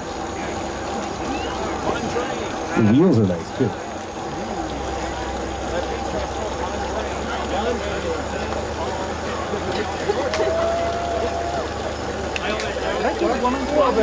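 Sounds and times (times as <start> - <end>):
people chattering: 0.0 - 14.0.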